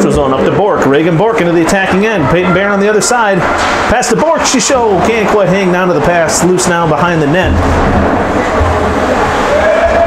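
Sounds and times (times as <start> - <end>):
ice hockey rink noise: 0.0 - 10.0
low rumble: 7.3 - 9.6.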